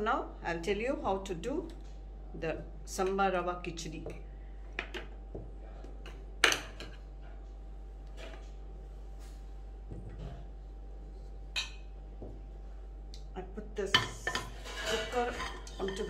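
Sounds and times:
ceramic bowls clinking: 14.0 - 16.0.

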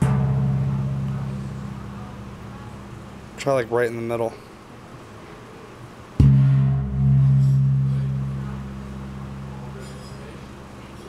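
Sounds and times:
deep low gong hum: 0.0 - 3.4, 6.2 - 10.7
gong struck: 0.0 - 3.4, 6.2 - 10.7.

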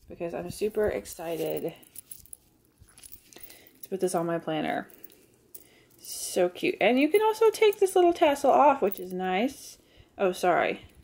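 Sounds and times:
woman speaking: 0.0 - 1.8, 3.9 - 4.9, 6.0 - 10.9
light clinks and rustles: 0.4 - 6.4, 7.0 - 9.4.

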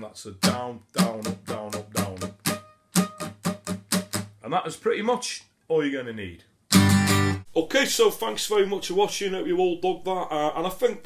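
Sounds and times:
acoustic guitar strumming: 0.4 - 4.4, 6.7 - 7.5.

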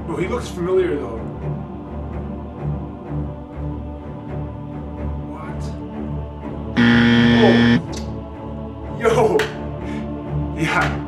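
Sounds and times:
background music: 0.0 - 11.0
loud steady buzzer: 6.8 - 7.9.

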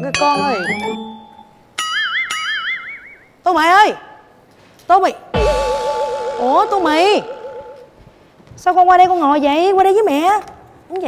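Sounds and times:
wobbling plucked string notes: 5.4 - 8.0.

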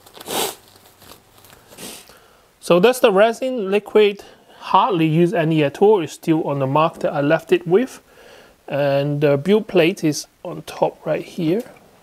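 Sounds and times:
gloves rustling and stretching: 0.0 - 2.3.

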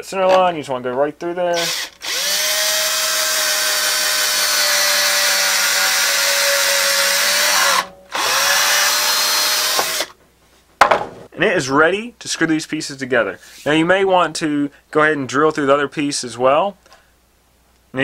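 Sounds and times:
cordless drill boring wood: 1.6 - 10.1.

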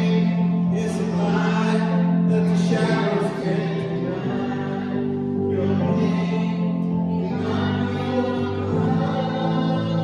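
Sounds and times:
electronic keyboard chords: 0.0 - 10.0
man singing worship song: 0.0 - 10.0.

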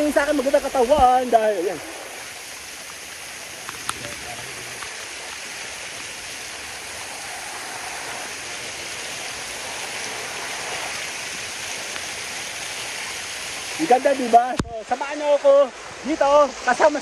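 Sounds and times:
waterfall splashing over rocks: 0.0 - 17.0.

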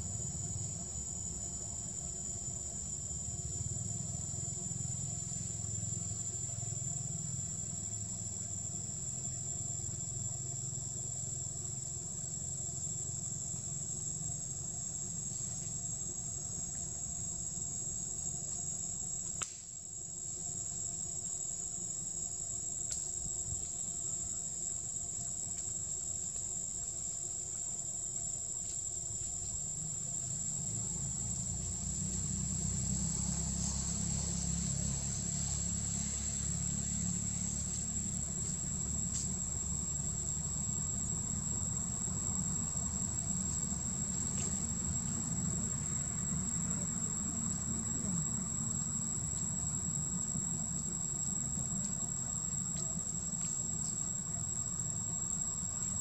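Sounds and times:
high-pitched insect drone: 20.1 - 56.0.

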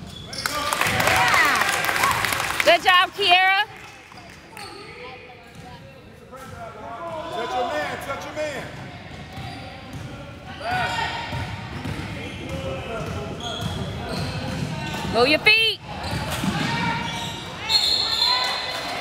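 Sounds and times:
sneakers squeaking on gym floor: 0.0 - 1.1, 4.0 - 7.6, 8.8 - 19.0
people calling out in a hall: 16.5 - 19.0.

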